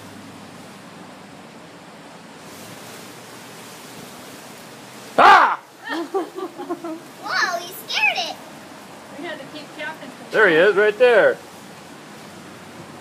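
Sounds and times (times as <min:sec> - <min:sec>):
background hiss: 0:00.0 - 0:13.0.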